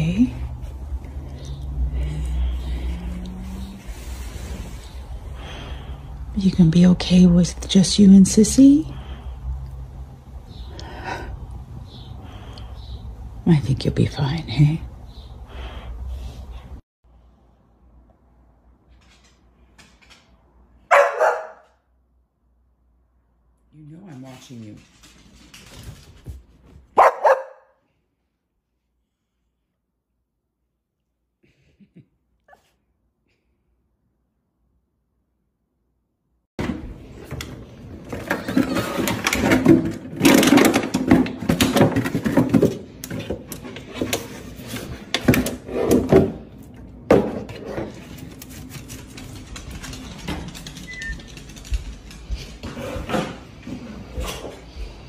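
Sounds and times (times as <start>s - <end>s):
dog barking: 20.9s - 21.8s, 27.0s - 27.8s.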